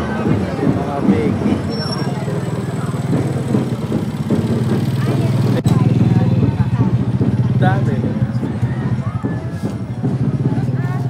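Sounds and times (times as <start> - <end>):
motorcycle engine running: 0.0 - 11.0
people talking: 0.0 - 11.0.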